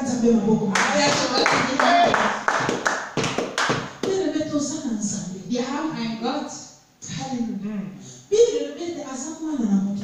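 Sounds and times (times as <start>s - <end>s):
hands clapping in steady beat: 0.7s - 4.2s.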